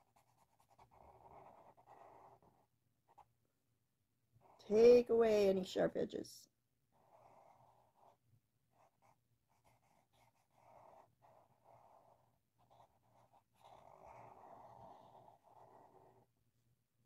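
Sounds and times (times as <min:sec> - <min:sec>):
marker rubbing on paper: 0:00.0 - 0:03.3, 0:06.9 - 0:16.3.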